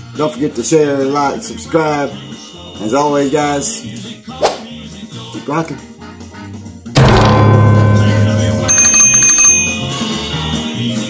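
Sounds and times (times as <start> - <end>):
quiet music bed: 0.0 - 9.1
loud music sting with hit: 6.9 - 8.7
high steady ringing tone: 7.1 - 10.2.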